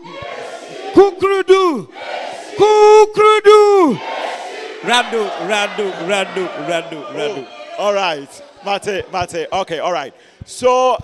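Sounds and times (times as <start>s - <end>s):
crowd chanting response: 0.0s - 10.6s
man shouting party chant: 0.0s - 11.0s.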